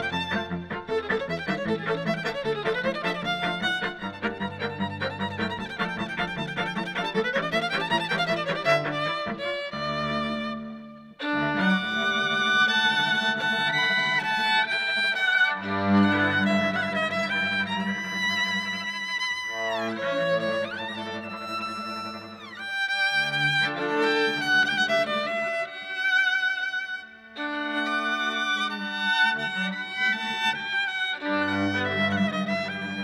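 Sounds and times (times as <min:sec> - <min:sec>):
string trio playing: 0:00.0 - 0:33.0.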